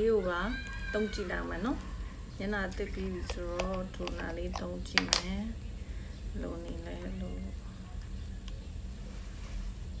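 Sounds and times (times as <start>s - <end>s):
woman talking: 0.0s - 7.6s.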